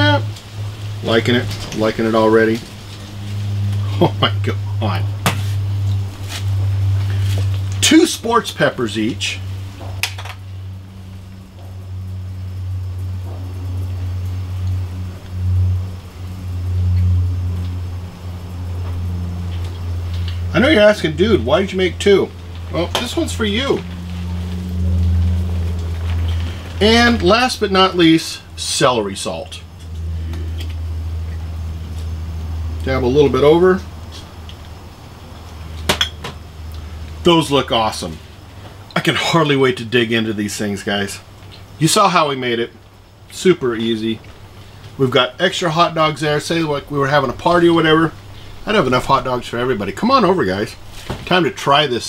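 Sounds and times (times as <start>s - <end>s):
low mechanical hum: 0.0s - 52.0s.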